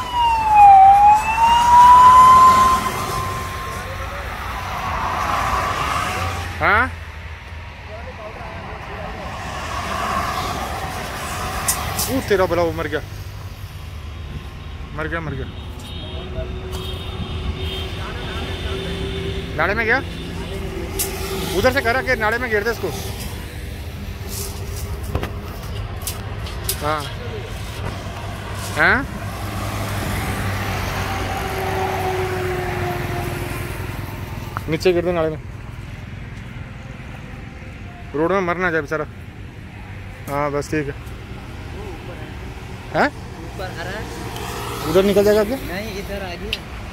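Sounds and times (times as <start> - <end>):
road traffic rumble: 0.0 - 46.9.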